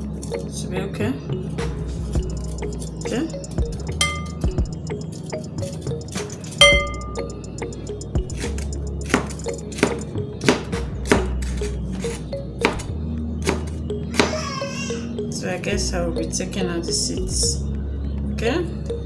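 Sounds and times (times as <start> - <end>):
background music: 0.0 - 19.0
ringing clink: 4.0 - 4.4, 6.3 - 7.2
knife chopping on cutting board: 8.4 - 11.6.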